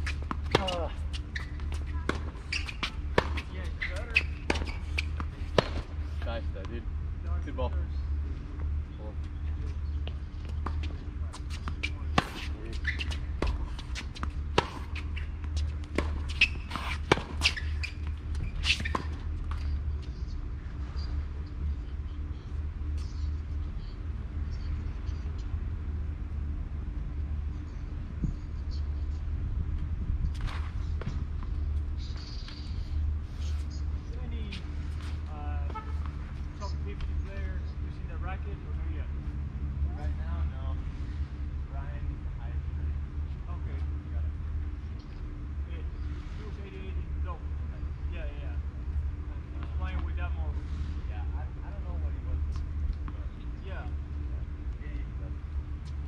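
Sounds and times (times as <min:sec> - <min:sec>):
tennis balls struck and bouncing: 0:00.0 - 0:06.0, 0:10.0 - 0:19.7
steady low rumble: 0:00.0 - 0:56.0.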